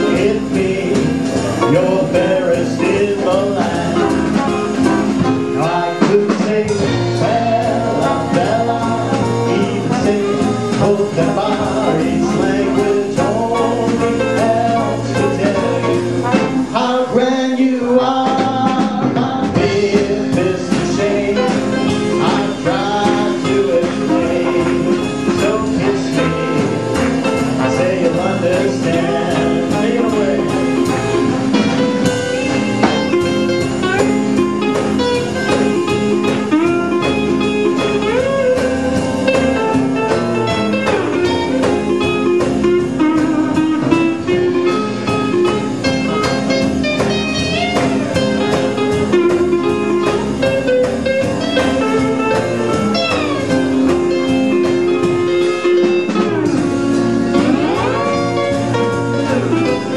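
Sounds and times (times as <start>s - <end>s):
acoustic guitar strumming: 0.0s - 59.9s
sliding lap steel guitar lead: 21.1s - 59.9s.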